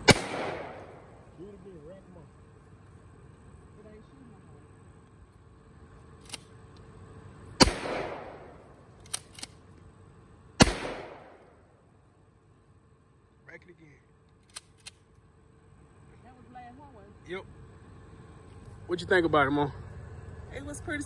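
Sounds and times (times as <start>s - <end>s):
shotgun blasts: 0.0s - 1.2s, 7.6s - 9.5s, 10.6s - 11.6s.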